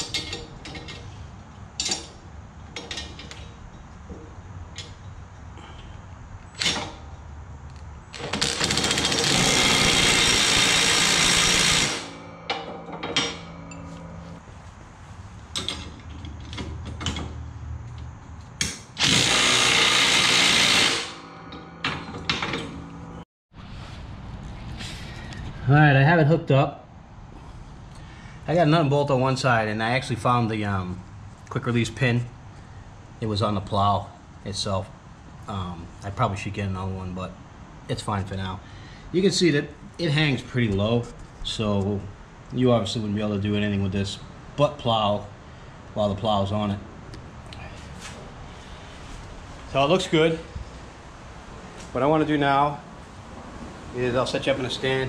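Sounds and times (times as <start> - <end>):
steel parts being handled: 0.0 - 5.2, 12.2 - 14.4, 15.5 - 17.4
impact driver running: 8.2 - 12.2, 19.0 - 21.2.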